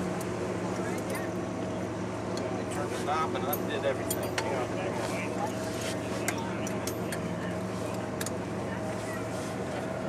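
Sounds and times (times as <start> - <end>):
engine humming: 0.0 - 10.0
faint voices: 0.5 - 10.0.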